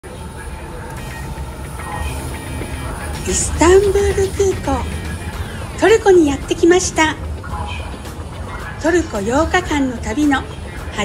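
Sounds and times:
escalator rumbling: 0.0s - 11.0s.

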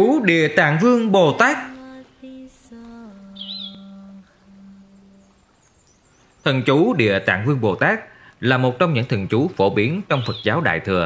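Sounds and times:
low held drone note: 1.8s - 5.5s
warbling bird-like chirp: 3.2s - 4.2s, 10.0s - 10.8s.

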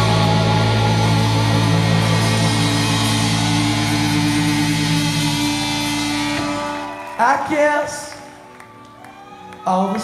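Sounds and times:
distorted electric guitar chord: 0.0s - 6.9s.

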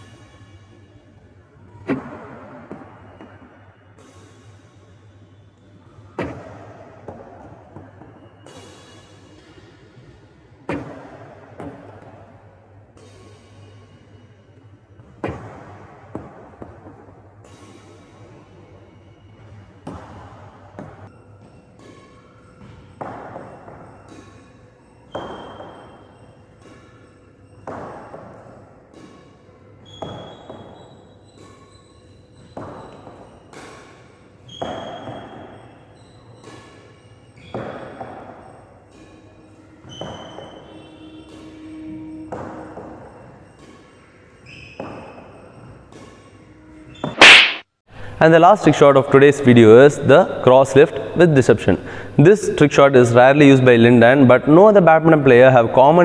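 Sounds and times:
badminton racket hitting shuttlecock: 47.0s - 47.7s.

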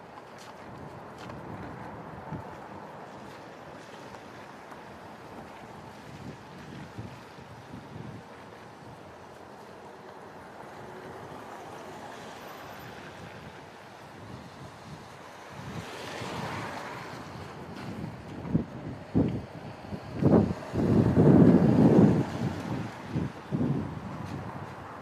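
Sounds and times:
wind buffeting microphone: 0.0s - 9.8s, 12.7s - 25.0s.

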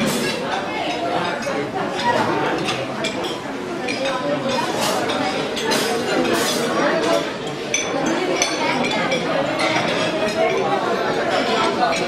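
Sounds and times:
diners chatting: 0.0s - 12.0s
plates and cutlery clinking: 0.0s - 12.0s.

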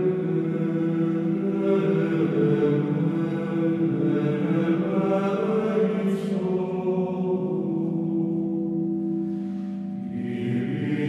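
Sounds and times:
slow choral chanting: 0.0s - 11.0s.

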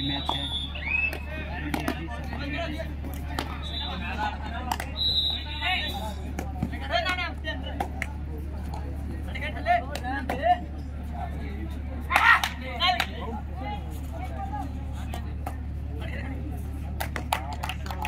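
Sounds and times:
steady low hum: 0.0s - 18.0s
voices calling and shouting: 0.0s - 18.0s.

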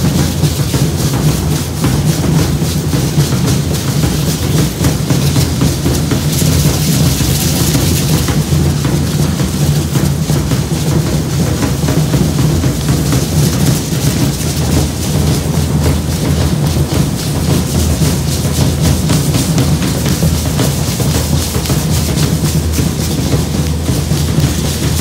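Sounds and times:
drums beating dance rhythm: 0.0s - 25.0s.

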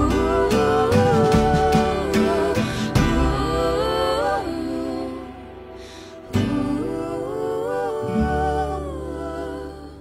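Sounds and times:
slow gliding melody: 0.0s - 10.0s.

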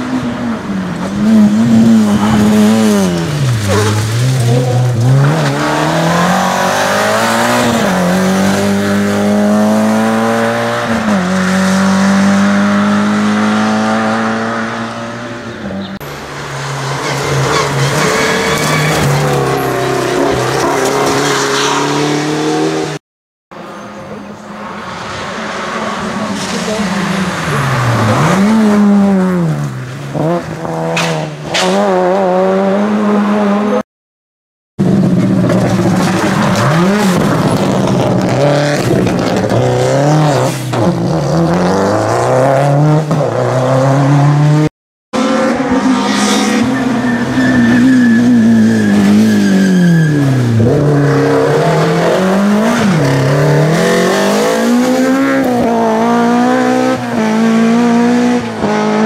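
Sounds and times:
rally car engines revving: 0.0s - 23.0s, 23.8s - 33.8s, 34.8s - 59.0s.

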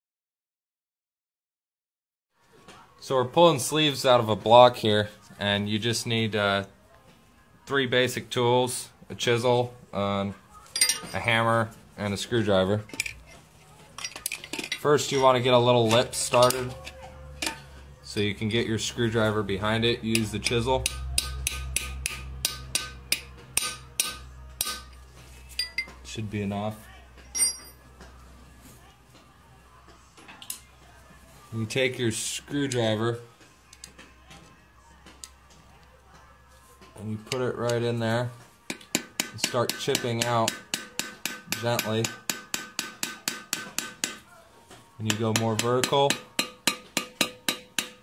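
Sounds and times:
hammer tapping metal chisel: 20.1s - 25.0s, 27.3s - 27.8s, 38.7s - 44.3s, 45.0s - 48.0s
hammer tapping a screwdriver: 38.7s - 44.2s.

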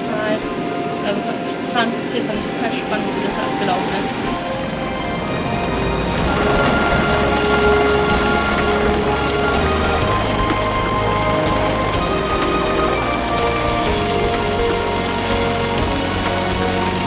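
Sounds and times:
background music with held notes: 0.0s - 17.0s
steady rushing noise: 0.0s - 17.0s.

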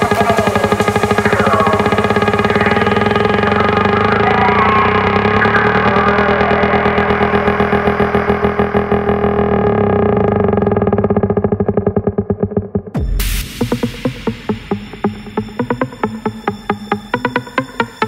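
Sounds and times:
electronic dance music: 0.0s - 10.3s, 12.0s - 18.0s.

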